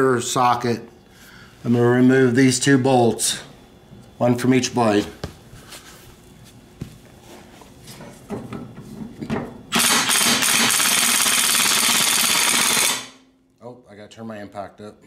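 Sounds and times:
impact wrench rattling: 9.7s - 13.2s.

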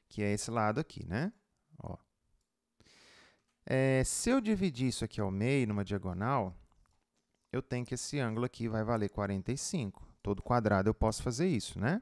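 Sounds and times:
man speaking: 0.0s - 2.1s, 3.7s - 6.6s, 7.5s - 12.0s
soft intake of breath: 2.8s - 3.5s.

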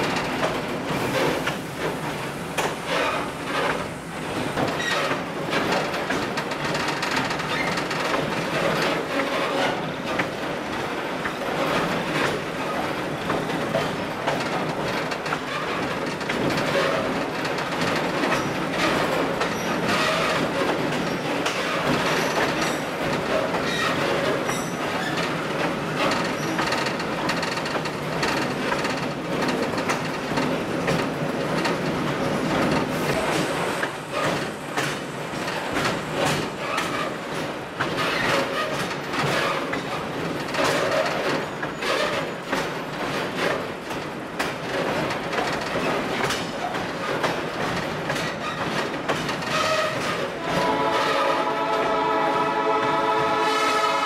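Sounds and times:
railway car running rumble: 0.0s - 54.0s
train wheels clicking over rail joints: 0.0s - 54.0s.

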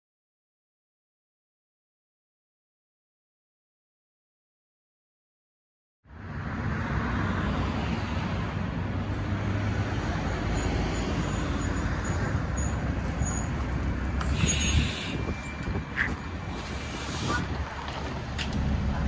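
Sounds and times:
bus engine rumble: 6.2s - 19.0s
air brake hiss: 14.2s - 15.3s.

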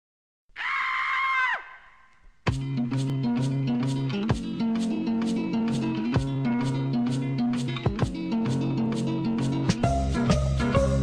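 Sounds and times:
cartoon character screaming: 0.5s - 2.1s.

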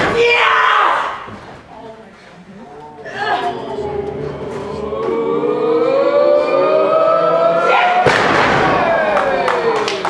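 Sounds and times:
crowd holding a rising note: 3.0s - 10.0s.

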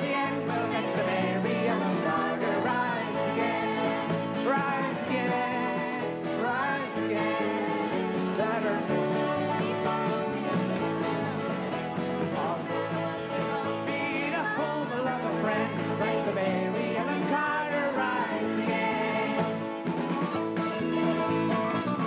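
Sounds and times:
women singing harmony: 0.0s - 19.7s
man singing lead: 0.0s - 19.8s
acoustic guitar strumming: 0.0s - 22.0s.

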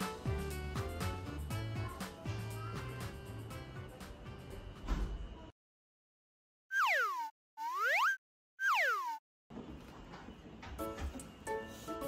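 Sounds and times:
cartoon sliding tones: 6.7s - 9.2s.

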